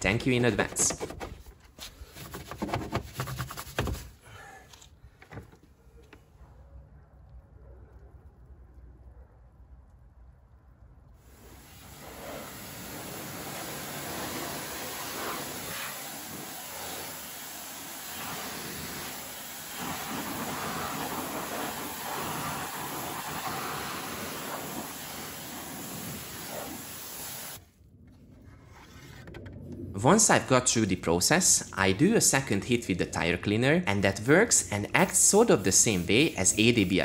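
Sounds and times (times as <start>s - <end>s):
pressure washer spraying water: 11.3s - 27.6s, 35.0s - 37.0s.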